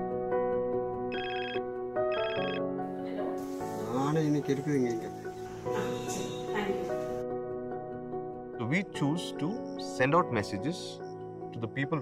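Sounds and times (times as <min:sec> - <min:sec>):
background music: 0:00.0 - 0:12.0
telephone ringing: 0:01.1 - 0:02.7.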